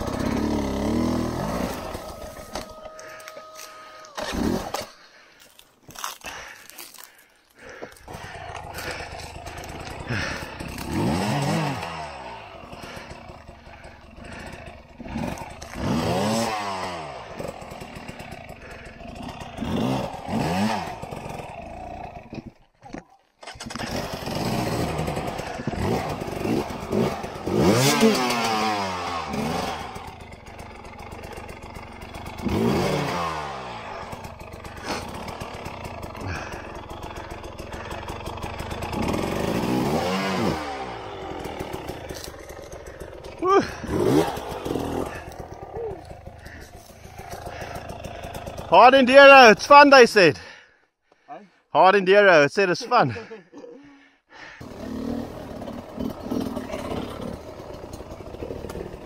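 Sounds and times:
dirt bike engines revving: 0.0 - 22.7, 23.4 - 50.6, 51.8 - 53.8, 54.4 - 59.0.

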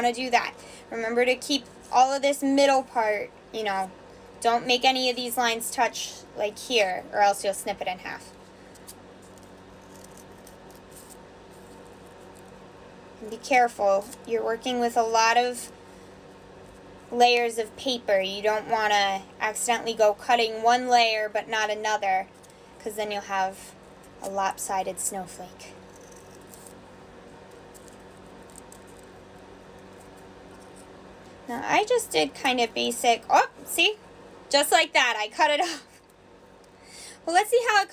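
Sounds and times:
low room hum: 0.0 - 37.9
scissors snipping paper: 8.8 - 11.2.

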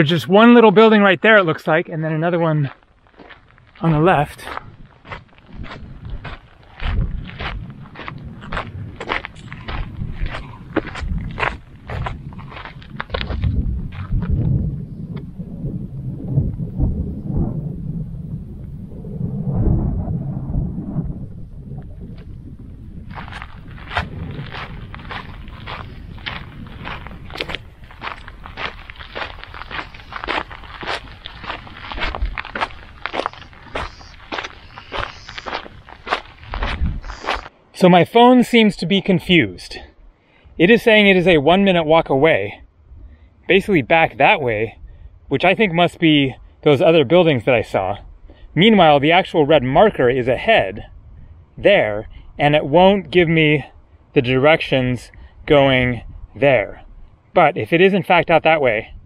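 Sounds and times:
footsteps on gravel path: 0.0 - 14.8, 23.0 - 37.6
low rumble: 3.4 - 37.4.

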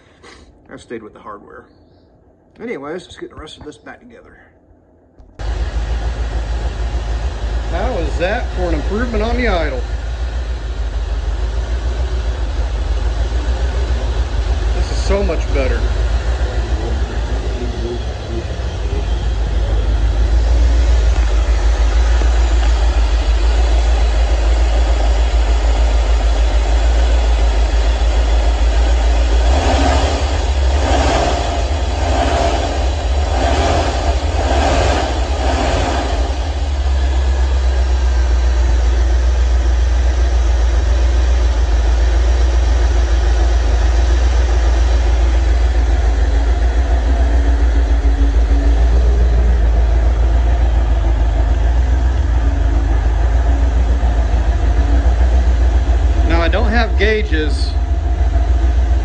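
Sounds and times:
car engine idling: 5.2 - 59.0.

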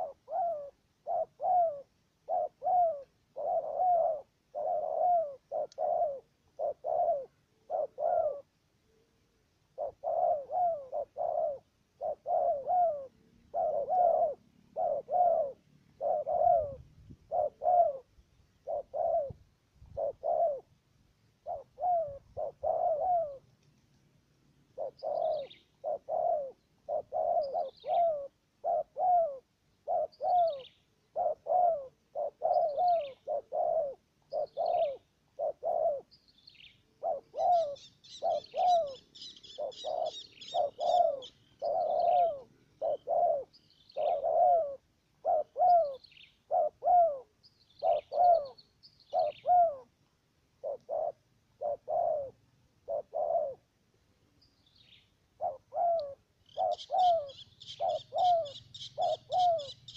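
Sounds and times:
doves cooing: 0.0 - 20.8, 21.4 - 23.8, 24.6 - 53.8, 55.2 - 59.9
high bird chattering: 55.4 - 59.9.

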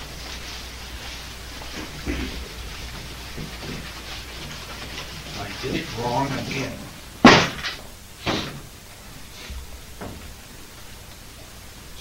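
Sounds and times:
chalkboard eraser scrubbing: 0.0 - 7.0
low steady hum: 0.0 - 12.0.

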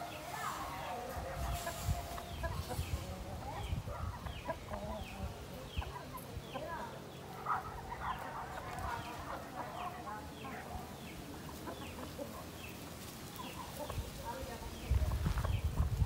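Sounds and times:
chickens clucking softly: 0.0 - 16.0.

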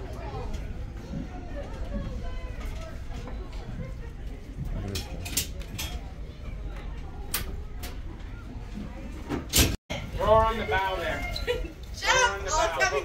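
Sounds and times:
faint background voices: 0.0 - 11.7.

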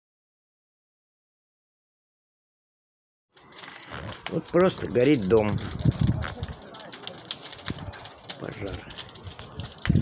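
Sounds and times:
fire cracks and pops: 3.3 - 10.0.

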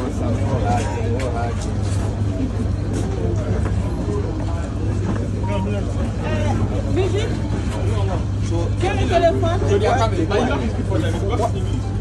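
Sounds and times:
people talking at once: 0.0 - 12.0.

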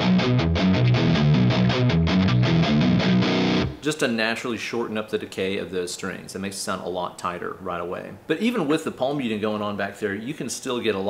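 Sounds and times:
distorted electric guitar riff: 0.0 - 3.8.

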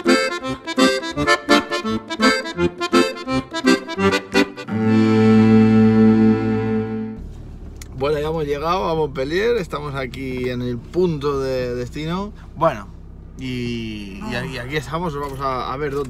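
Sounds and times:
accordion music: 0.0 - 7.2.

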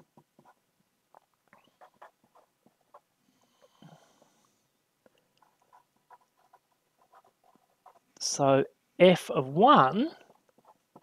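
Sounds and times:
marker pen writing on paper: 0.0 - 4.3, 5.4 - 8.3, 10.1 - 11.0.

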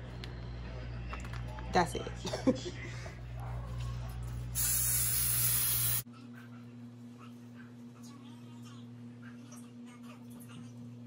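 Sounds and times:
loud even hiss: 4.6 - 6.0.

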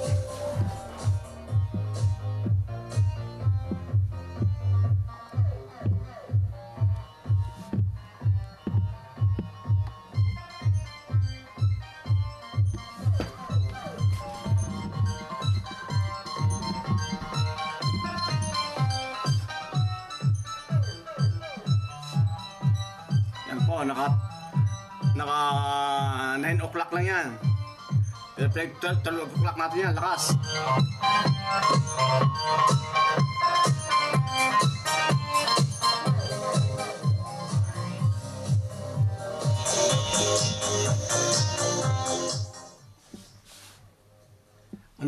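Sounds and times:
steady kick drum: 0.0 - 42.5
electronic dance music: 0.0 - 42.8.

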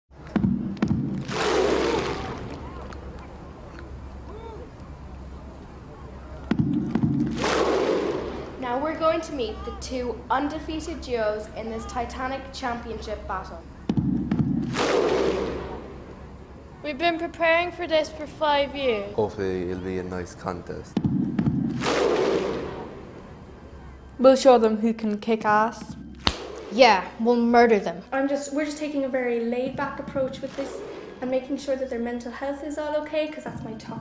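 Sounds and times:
loud rushing burst of noise: 0.4 - 2.9, 6.5 - 9.1, 13.8 - 16.7, 21.0 - 23.5.

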